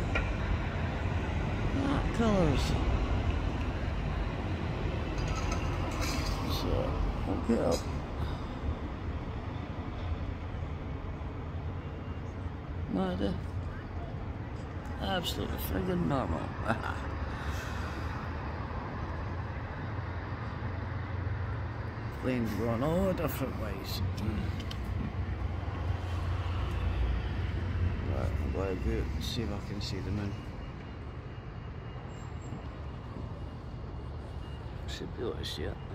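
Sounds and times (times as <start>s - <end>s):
distant road traffic rumble: 0.0s - 35.9s.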